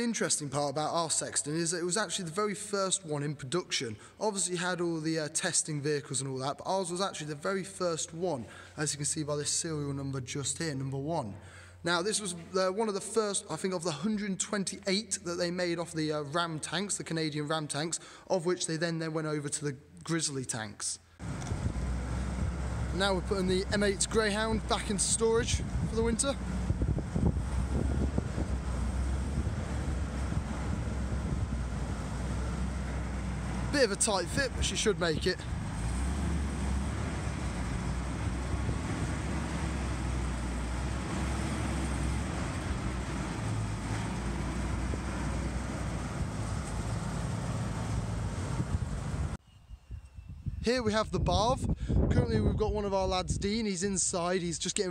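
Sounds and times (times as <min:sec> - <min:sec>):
vehicle engine running at low revs: 0:21.2 - 0:49.4
wind on microphone: 0:25.0 - 0:32.0, 0:48.5 - 0:53.5.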